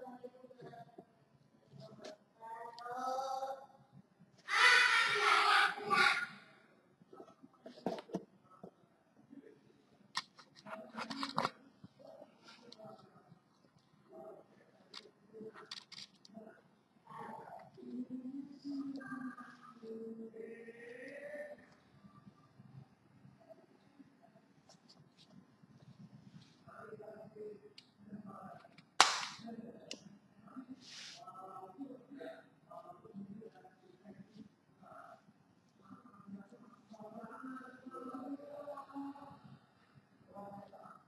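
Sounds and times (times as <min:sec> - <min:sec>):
sharp snap: 0:29.0 - 0:29.4.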